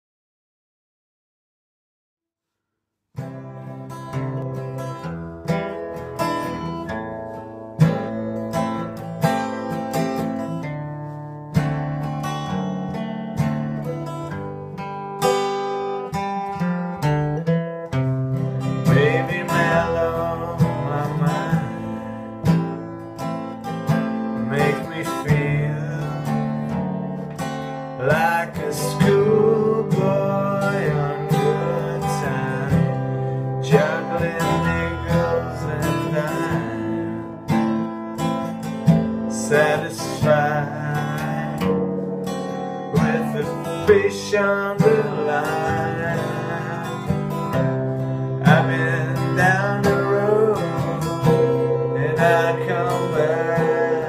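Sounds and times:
acoustic guitar strumming: 0:03.2 - 0:54.0
wavering melody line: 0:49.4 - 0:54.0.

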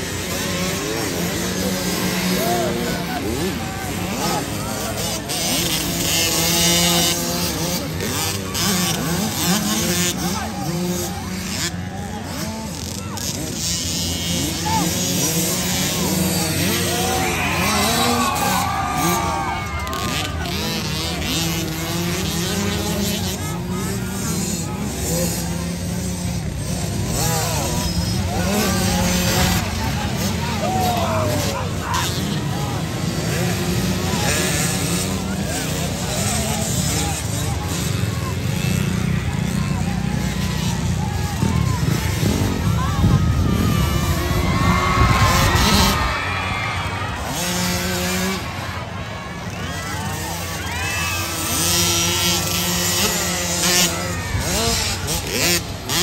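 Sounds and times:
crowd voices: 0:00.0 - 0:56.0
motocross bikes revving: 0:00.0 - 0:56.0
spectators talking and shouting: 0:00.0 - 0:56.0.

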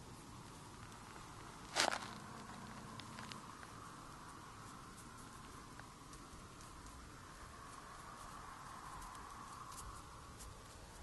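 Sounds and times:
brush stroking paper: 0:07.6 - 0:11.0.

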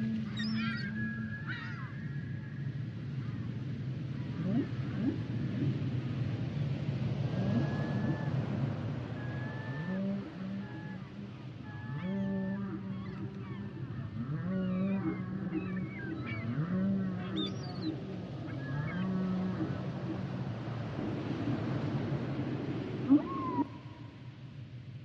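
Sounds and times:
whale low moans: 0:04.2 - 0:05.8, 0:07.2 - 0:21.8, 0:23.0 - 0:24.1
whale high whistles: 0:07.4 - 0:08.5, 0:23.1 - 0:24.1.

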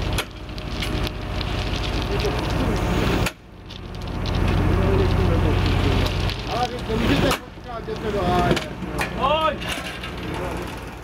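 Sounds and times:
heavy diesel engine running: 0:00.0 - 0:11.0.

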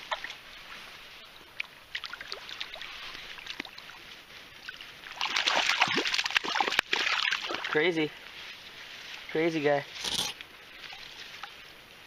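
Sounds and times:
stream water washing: 0:00.0 - 0:12.0
fish splashing at water surface: 0:05.1 - 0:07.7.

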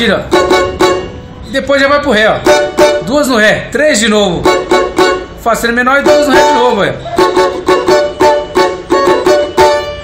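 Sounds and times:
banjo strumming: 0:00.0 - 0:01.4, 0:02.4 - 0:03.3, 0:04.2 - 0:10.0.

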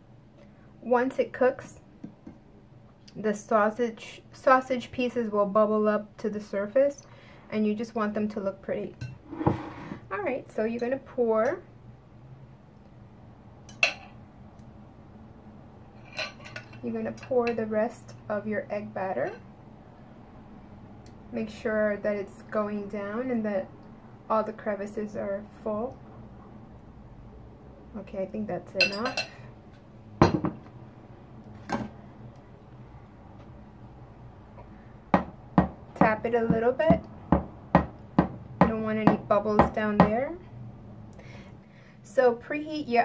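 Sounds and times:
fork clinking against glass bowl: 0:28.8 - 0:29.4
fork knocking on countertop: 0:30.2 - 0:30.6.

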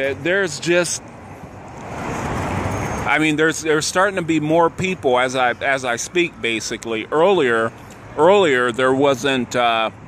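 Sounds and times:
car passing: 0:00.0 - 0:06.5.

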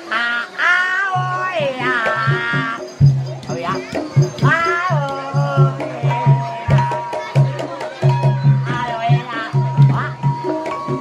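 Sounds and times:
gamelan music: 0:01.0 - 0:11.0
low drum strokes: 0:01.1 - 0:11.0.

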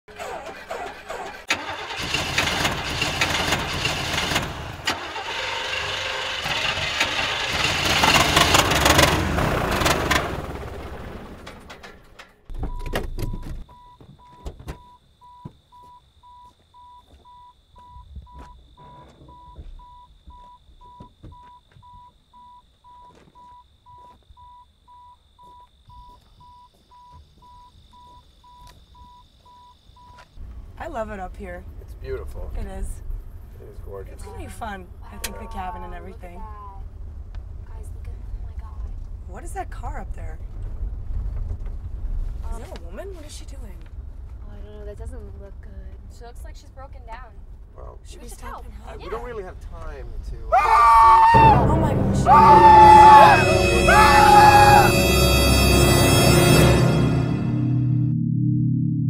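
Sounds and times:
car engine running: 0:00.1 - 0:12.7
car door warning chime beeping: 0:12.5 - 0:30.2.

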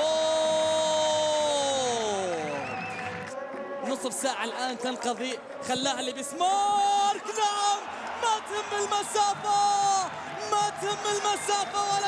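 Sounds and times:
commentator shouting: 0:00.0 - 0:02.6, 0:03.8 - 0:12.0
stadium background noise: 0:00.0 - 0:12.0.

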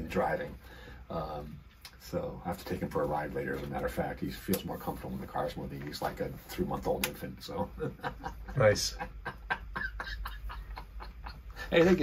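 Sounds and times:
man chuckling: 0:07.5 - 0:12.0.

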